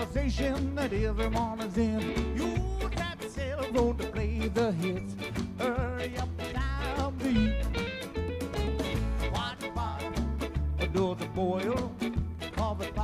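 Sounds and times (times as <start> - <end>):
acoustic ska band playing: 0.0 - 13.0
upright bass line: 0.0 - 13.0.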